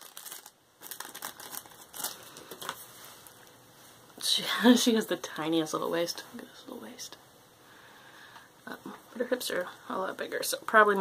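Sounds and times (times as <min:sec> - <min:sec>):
plastic wrapping crinkling: 0:00.0 - 0:03.6.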